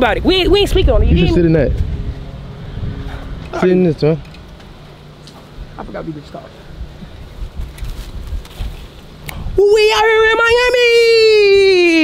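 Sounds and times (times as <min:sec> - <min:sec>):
wind buffeting microphone: 0:00.0 - 0:04.0, 0:06.8 - 0:11.4.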